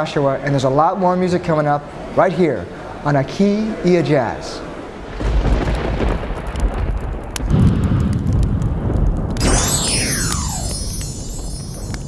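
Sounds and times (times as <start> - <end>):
falling sweep: 9.4 - 12.0.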